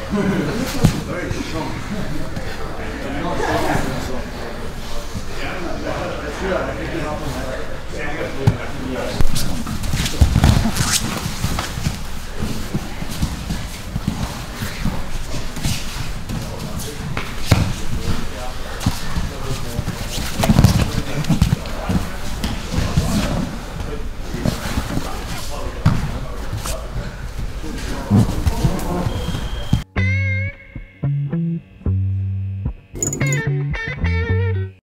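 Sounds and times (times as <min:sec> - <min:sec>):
bodies thumping on mat: 0:09.8 - 0:12.0, 0:19.8 - 0:23.4.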